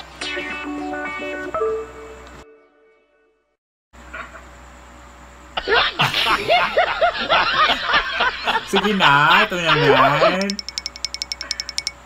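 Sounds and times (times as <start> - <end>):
person laughing and squealing: 5.6 - 7.8, 8.4 - 10.4.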